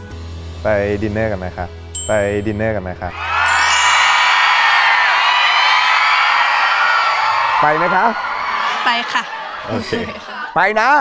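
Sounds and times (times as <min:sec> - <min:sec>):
audience cheering and whooping: 0:03.1 - 0:10.6.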